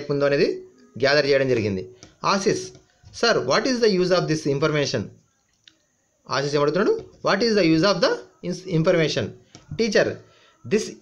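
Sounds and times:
man speaking: 0:00.0 - 0:05.2, 0:06.3 - 0:11.0.

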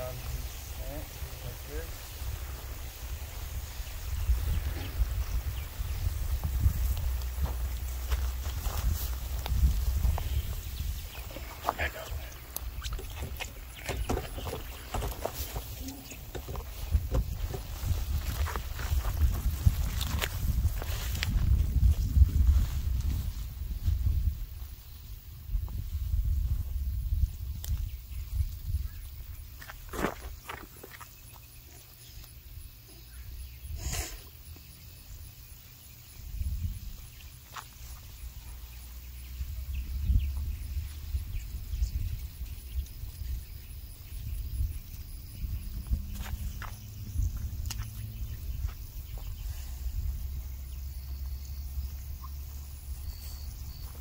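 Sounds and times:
wind rumble on microphone: 0:00.0 - 0:30.6, 0:36.1 - 0:54.0
rustling plants: 0:00.0 - 0:33.2, 0:35.5 - 0:54.0
footsteps: 0:06.2 - 0:23.6.

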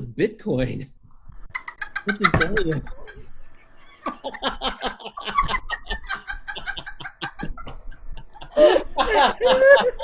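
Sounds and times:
people cackling with laughter: 0:01.5 - 0:10.0.

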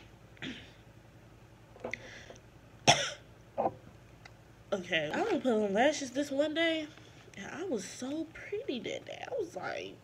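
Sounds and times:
woman coughing: 0:02.9 - 0:03.3.

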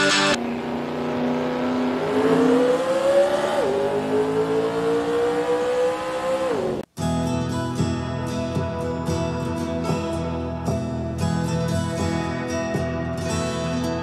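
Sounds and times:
music: 0:00.0 - 0:00.4, 0:07.0 - 0:14.0
car engine accelerating: 0:00.0 - 0:06.9.

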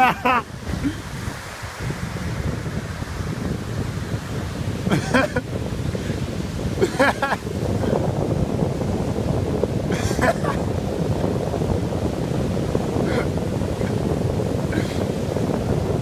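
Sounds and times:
waves breaking on beach: 0:00.0 - 0:16.0
wind buffeting microphone: 0:00.0 - 0:16.0.

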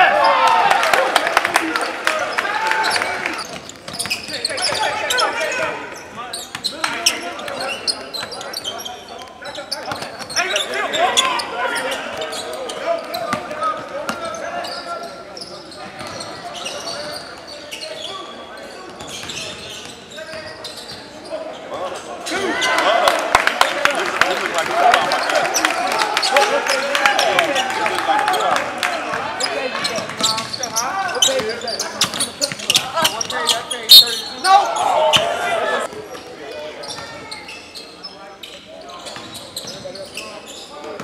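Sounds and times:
voices in background: 0:00.0 - 0:41.0.

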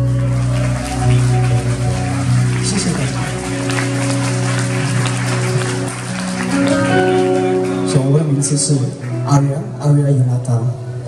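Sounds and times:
electric guitars sustained chord: 0:00.0 - 0:11.0.

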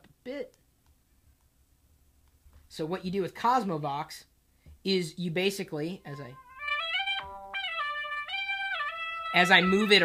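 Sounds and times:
synthesized theremin-like tone: 0:06.3 - 0:10.0.

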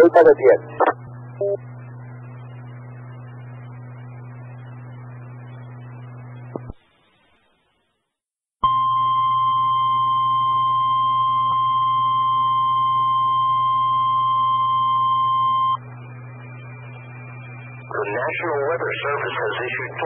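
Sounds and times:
low hum: 0:00.0 - 0:06.8, 0:08.6 - 0:20.0
radio alarm tone: 0:08.6 - 0:15.8
radio hiss: 0:17.9 - 0:20.0.

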